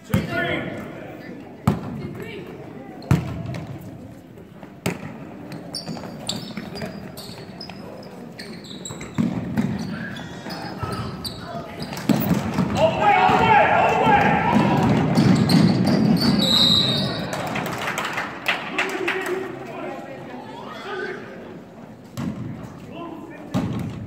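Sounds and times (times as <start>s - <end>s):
sneaker squeaks: 5.0s - 12.4s, 15.2s - 17.3s
spectators voices and shouts: 12.6s - 15.2s.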